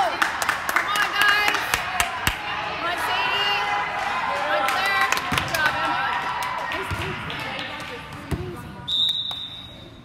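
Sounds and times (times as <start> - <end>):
referee's whistle blast: 8.9 - 10.0.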